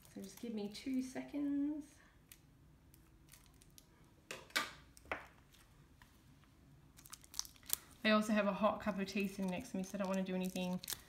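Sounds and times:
shrink wrap crinkling: 0.0s - 1.2s, 2.2s - 4.1s, 6.9s - 11.0s.

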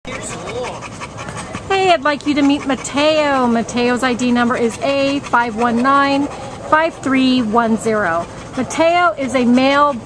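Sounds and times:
dog panting: 0.1s - 10.0s.

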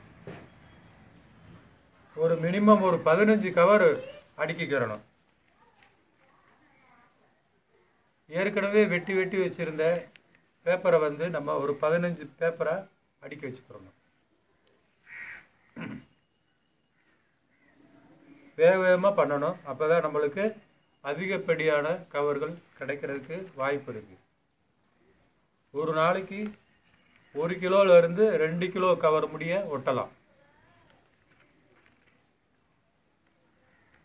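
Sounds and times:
crow cawing: 15.0s - 15.9s, 16.9s - 18.6s, 33.5s - 34.0s.

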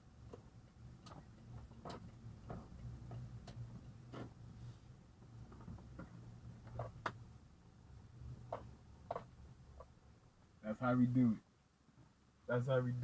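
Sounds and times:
sharp clicks and ticks: 0.2s - 3.7s.

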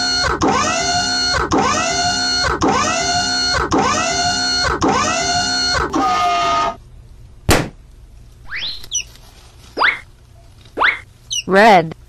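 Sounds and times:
balloon pop: 7.5s - 7.8s.

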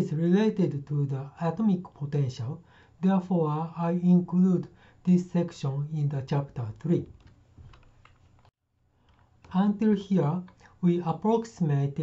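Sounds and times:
low room noise: 0.0s - 12.0s.

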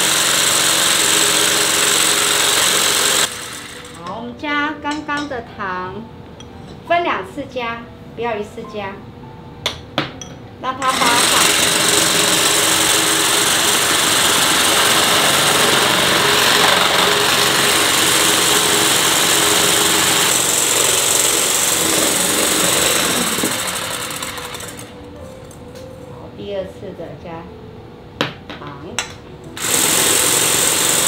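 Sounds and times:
electric whisk in metal bowl: 0.0s - 4.2s, 10.8s - 25.1s, 29.6s - 31.0s.

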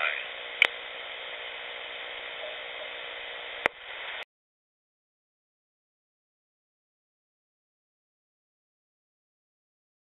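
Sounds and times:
radio static hiss: 0.0s - 4.3s.

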